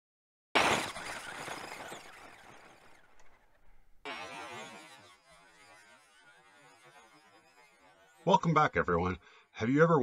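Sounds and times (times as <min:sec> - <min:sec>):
electric toy truck motor: 0:00.6 - 0:09.7.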